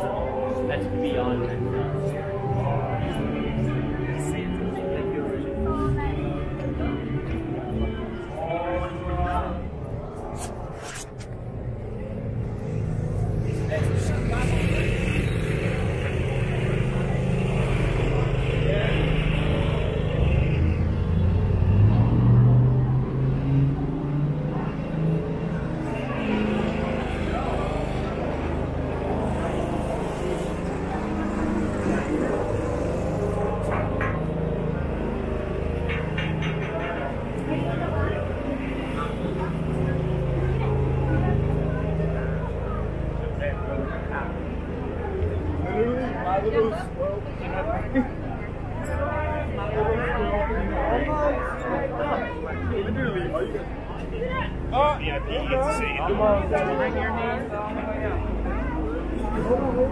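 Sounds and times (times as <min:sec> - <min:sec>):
people talking: 0:00.0 - 0:59.9
vehicle engine running: 0:00.0 - 0:59.9.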